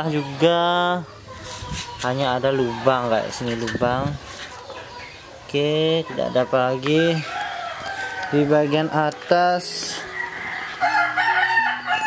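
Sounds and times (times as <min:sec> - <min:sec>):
rooster crowing: 0:07.1 - 0:09.0, 0:10.0 - 0:12.0.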